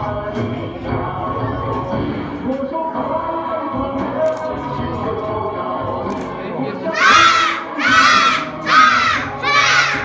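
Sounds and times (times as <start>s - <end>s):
children shouting in unison: 7.0s - 10.0s.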